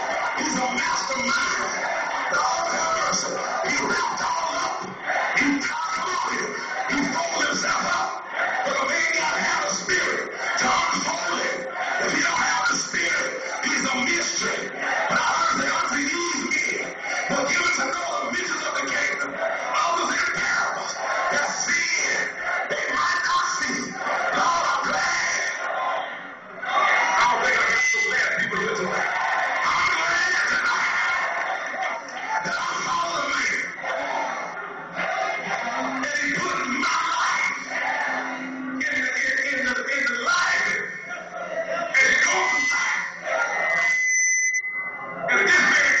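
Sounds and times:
congregation voices: 0.0 - 46.0
microphone feedback whistle: 43.8 - 45.1.

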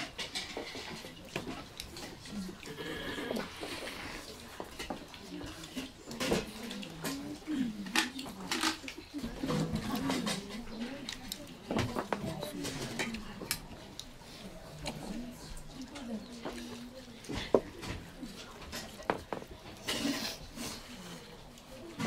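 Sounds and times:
low murmured voices: 0.0 - 22.0.

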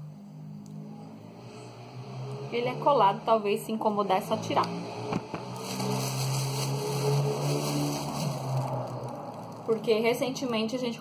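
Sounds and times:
low motor drone: 0.0 - 10.4.

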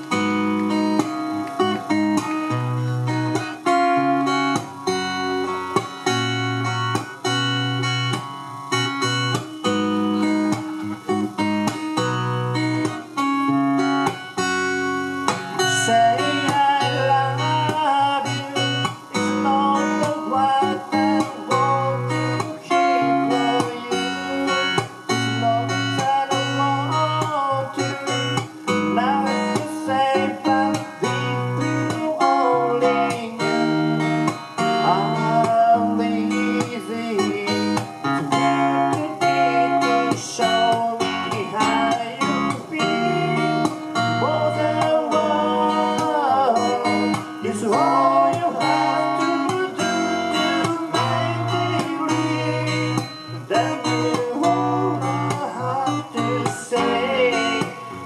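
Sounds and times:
acoustic guitar music: 0.0 - 58.0
bass line: 0.0 - 58.0.

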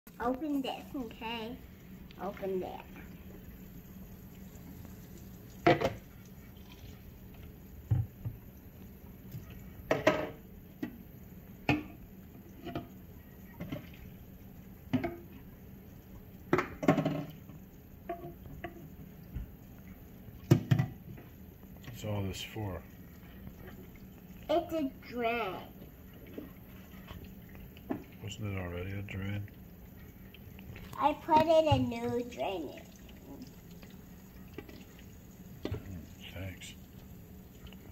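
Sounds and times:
faucet running onto bottles: 20.5 - 37.9.

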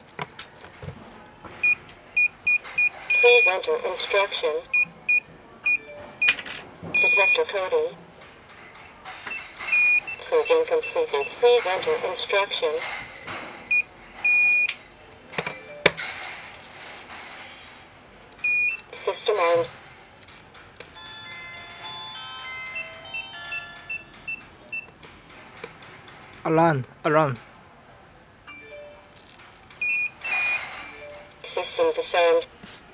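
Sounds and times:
alarm panel high beep: 3.1 - 3.5, 7.0 - 7.4
short high beeps: 3.1 - 3.5
alarm panel chord melody: 21.0 - 24.1.

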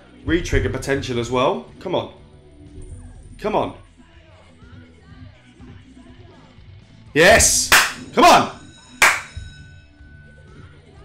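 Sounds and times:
metallic clang with bell ring: 9.0 - 9.7.

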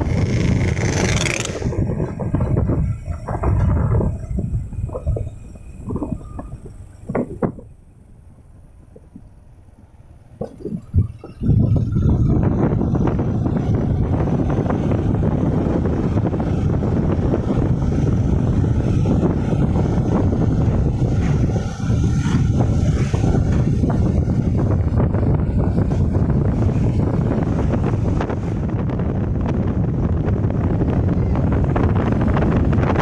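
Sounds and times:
vehicle engine and road noise: 0.0 - 33.0
wind buffeting microphone: 0.0 - 33.0.

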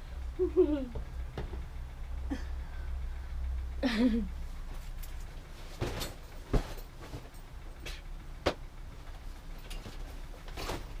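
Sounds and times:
objects knocking and clunking: 1.0 - 1.7.

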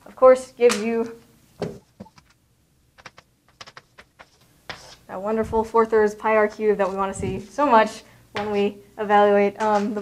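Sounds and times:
chalk tapping on blackboard: 3.0 - 5.0.

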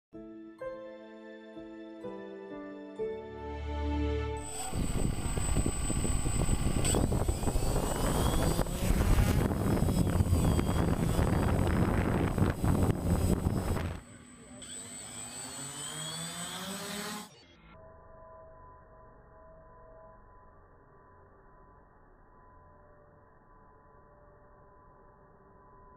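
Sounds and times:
wind noise on microphone: 4.4 - 14.0
drone propellers whirring: 4.4 - 17.7.

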